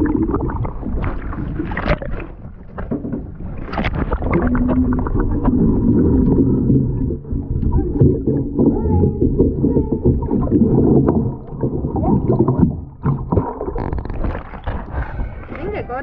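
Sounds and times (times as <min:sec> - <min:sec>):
bubbles crackling: 0:00.0 - 0:15.8
low underwater rumble: 0:00.0 - 0:16.0
underwater water movement: 0:00.0 - 0:16.0.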